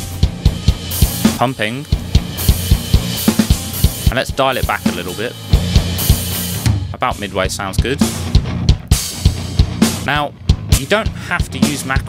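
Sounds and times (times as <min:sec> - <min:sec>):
drum kit rock beat: 0:00.0 - 0:12.0.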